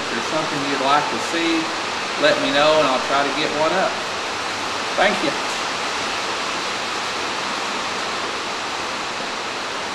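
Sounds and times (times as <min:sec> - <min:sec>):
steady background hiss: 0:00.0 - 0:09.9.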